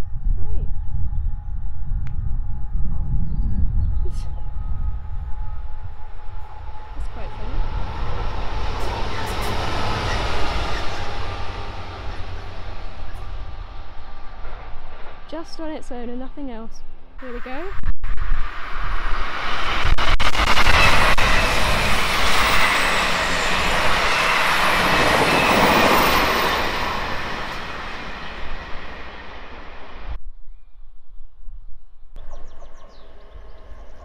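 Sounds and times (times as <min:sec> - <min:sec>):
passenger train rushing past: 0:04.5 - 0:17.7, 0:18.4 - 0:30.2
sharp train clicks: 0:08.1 - 0:12.5.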